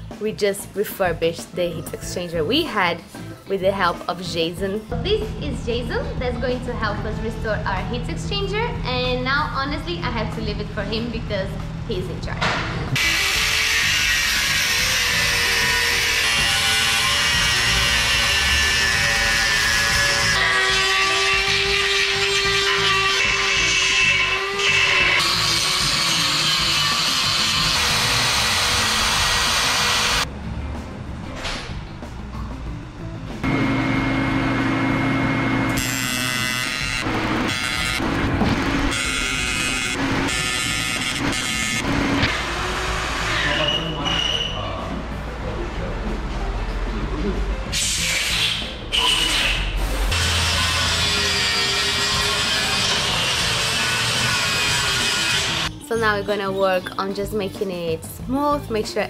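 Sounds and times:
background music: 0.0 - 33.8, 35.8 - 59.0
power grinder grinding metal: 13.0 - 30.2, 35.7 - 43.9, 50.1 - 55.7.

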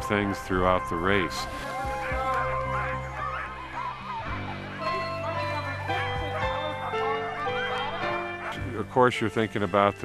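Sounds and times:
background music with held chords: 0.0 - 10.0.

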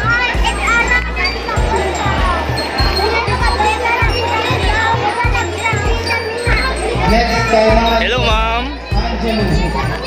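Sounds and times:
children chattering and calling out: 0.0 - 10.0
loud music with deep bass: 0.0 - 10.0.

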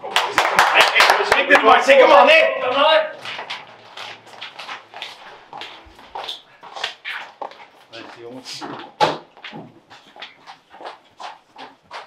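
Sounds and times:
people clapping hands: 0.0 - 4.6
people shouting encouragement: 1.3 - 3.1.

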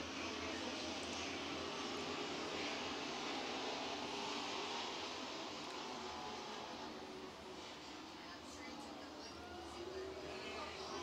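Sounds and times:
racing truck engines droning: 0.0 - 11.0.

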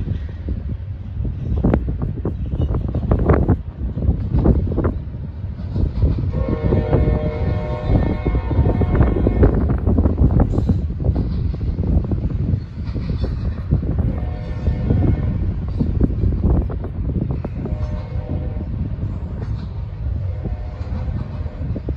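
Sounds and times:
freight train rumble: 0.0 - 21.9
train horn: 6.3 - 9.7, 14.1 - 15.6, 17.6 - 18.9, 20.2 - 21.9.

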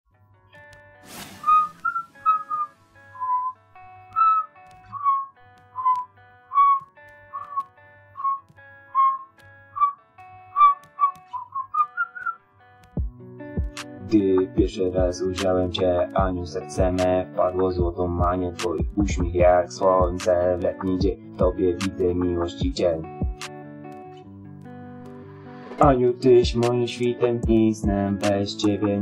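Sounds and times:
short hiss: 1.0 - 2.1
whistled melody: 1.3 - 12.4
low beat: 13.0 - 17.0, 17.8 - 20.4, 21.0 - 22.0, 22.6 - 23.4, 25.8 - 26.7, 27.4 - 28.0.

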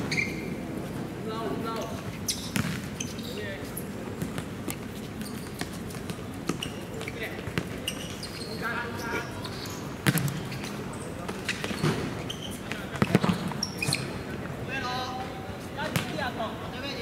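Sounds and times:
football kicked and bouncing: 2.5 - 2.9, 4.2 - 4.8, 10.0 - 10.4, 13.0 - 13.6, 15.9 - 16.2.

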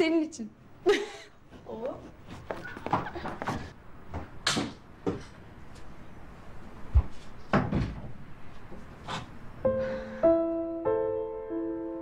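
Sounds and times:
door shutting with thump: 7.5 - 8.2
sustained piano notes: 9.6 - 12.0.

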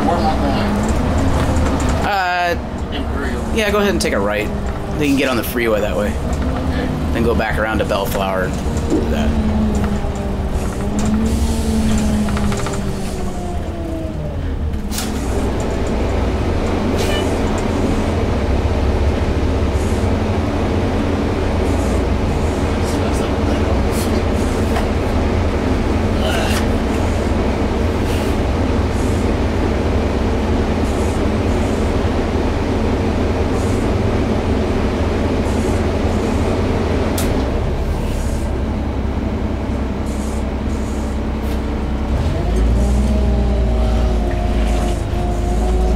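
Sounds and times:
bus engine drone: 0.0 - 45.9.

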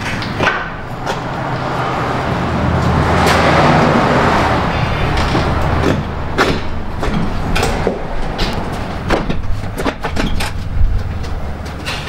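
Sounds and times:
metallic clanks and rattles: 4.7 - 12.0.

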